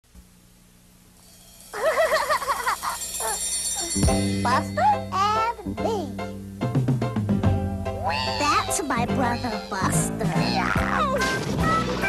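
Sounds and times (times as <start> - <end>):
faint hum and hiss: 0.0 - 12.0
warbling monkey-like call: 1.7 - 3.9, 8.0 - 11.2.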